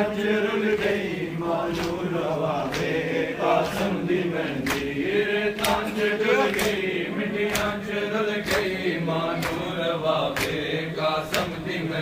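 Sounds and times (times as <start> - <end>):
men chanting a lament: 0.0 - 12.0.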